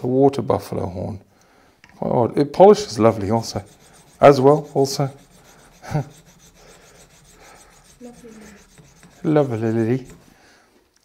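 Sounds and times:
blade scraping horn: 3.0 - 10.2.

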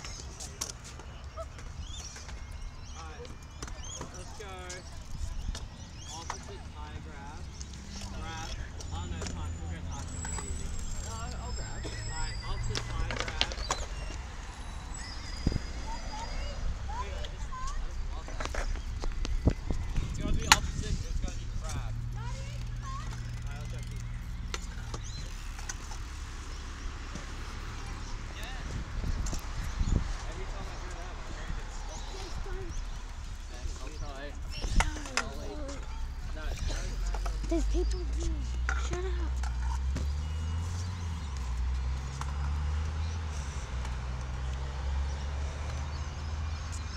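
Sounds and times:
children chattering: 0.0 - 40.7
young voices calling out: 15.0 - 18.4, 22.0 - 24.4, 31.7 - 39.6.

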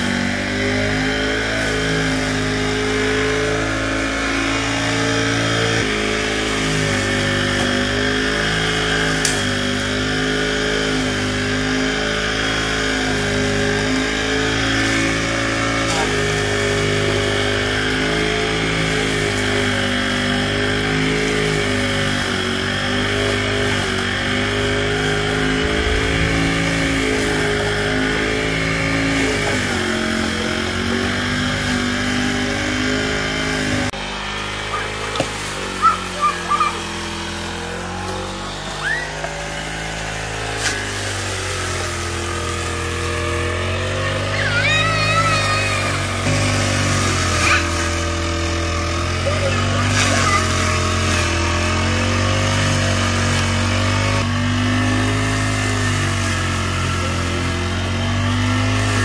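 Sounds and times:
brush cutter engine revving: 0.0 - 59.0.

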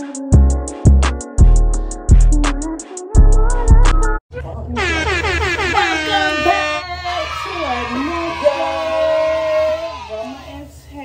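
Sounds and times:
women calling out loudly: 4.8 - 10.7.

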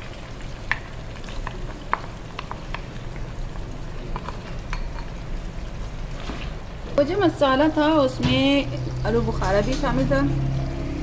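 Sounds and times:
oil crackles and ticks: 0.0 - 5.2
chicken sizzling in oil: 0.0 - 11.0.

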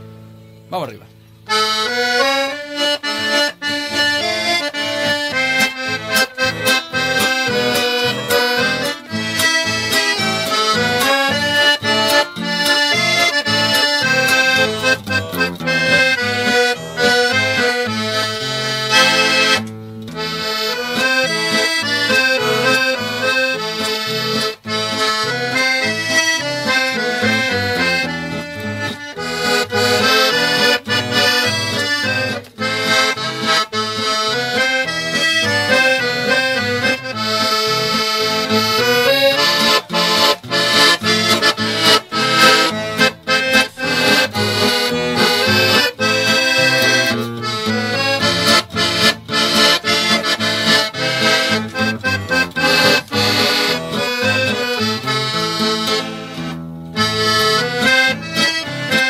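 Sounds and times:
accordion playing: 0.0 - 59.0.

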